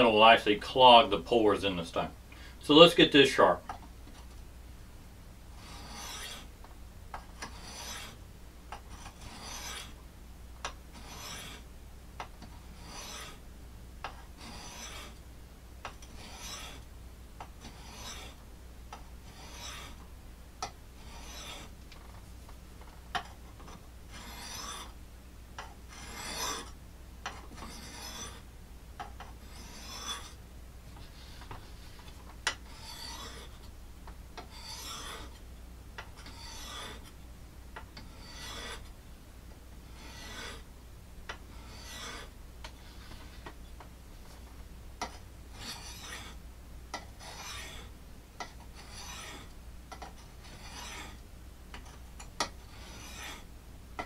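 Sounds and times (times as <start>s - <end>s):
knife scraping on sharpening stone: 5.6s - 6.5s, 7.4s - 8.2s, 8.9s - 9.9s, 11.0s - 11.6s, 12.7s - 13.4s, 14.4s - 15.2s, 16.2s - 16.8s, 17.6s - 18.4s, 19.3s - 20.0s, 21.0s - 21.7s, 23.7s - 24.9s, 25.9s - 28.4s, 29.4s - 30.4s, 31.1s - 33.6s, 34.4s - 35.4s, 36.2s - 37.1s, 38.0s - 38.9s, 39.9s - 40.7s, 41.5s - 43.4s, 45.0s - 51.2s, 51.8s - 53.4s.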